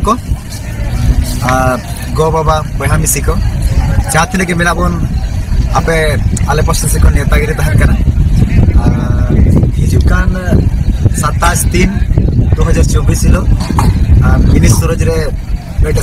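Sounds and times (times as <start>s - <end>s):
man talking: 0.0s - 16.0s
wind buffeting microphone: 0.0s - 16.0s.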